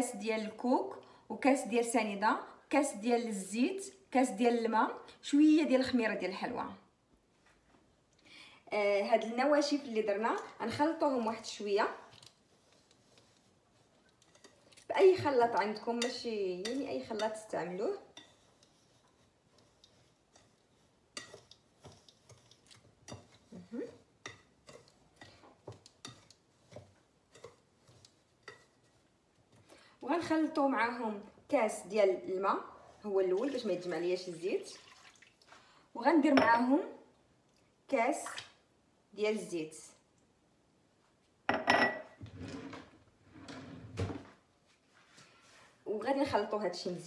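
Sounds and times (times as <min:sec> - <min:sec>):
whisk tapping glass bowl: 0:15.2 - 0:17.5, 0:18.1 - 0:28.8
dishes and utensils clattering: 0:41.5 - 0:42.9.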